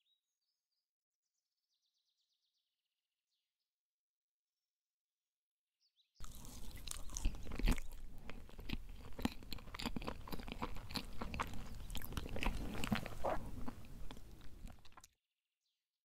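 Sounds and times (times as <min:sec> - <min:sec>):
person chewing close to microphone: 0:06.2 - 0:15.2
mouth clicks and smacks: 0:06.3 - 0:15.1.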